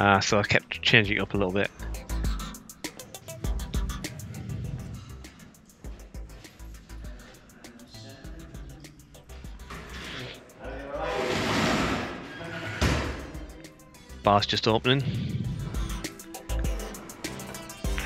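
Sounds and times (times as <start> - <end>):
background music: 0.0 - 18.0
voices: 12.2 - 15.8.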